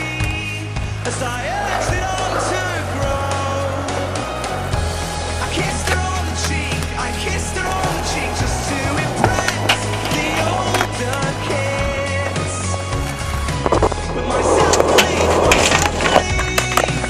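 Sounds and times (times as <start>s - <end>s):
skateboard wheels rolling on concrete: 0.0s - 17.0s
music track: 0.8s - 17.0s
skateboard clacking on ground: 5.4s - 12.4s, 13.0s - 17.0s.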